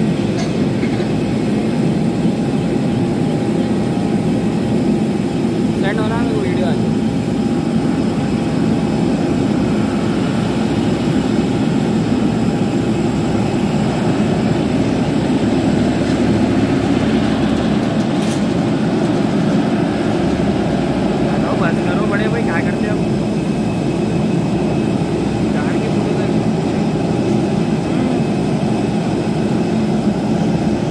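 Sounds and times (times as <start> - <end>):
jet engines running: 0.0 - 30.9.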